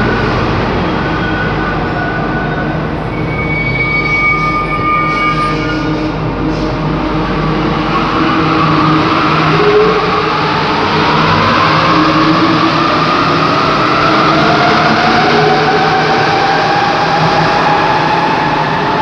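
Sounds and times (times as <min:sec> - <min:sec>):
train running rumble: 0:00.0 - 0:03.4, 0:04.3 - 0:19.0
train whine: 0:00.0 - 0:19.0.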